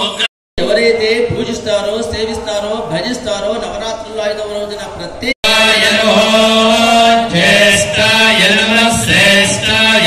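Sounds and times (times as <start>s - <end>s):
men chanting in unison: 5.4s - 10.0s.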